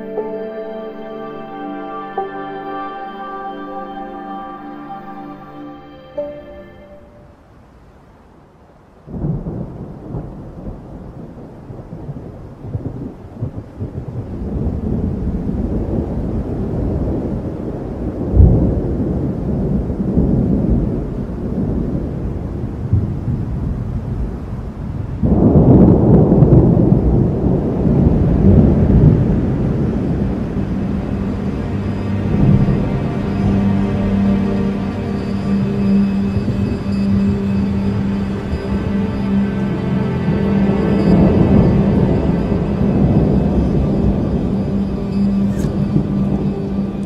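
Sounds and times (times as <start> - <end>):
thunder rumbling: 9.1 - 47.0.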